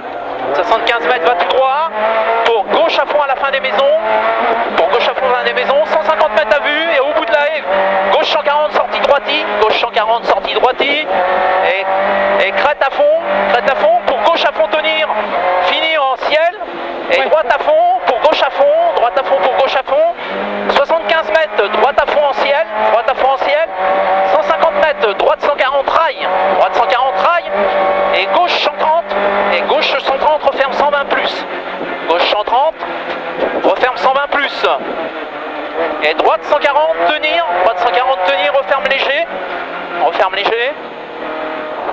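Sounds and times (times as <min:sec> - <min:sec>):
rally car engine revving: 0:00.0 - 0:41.9.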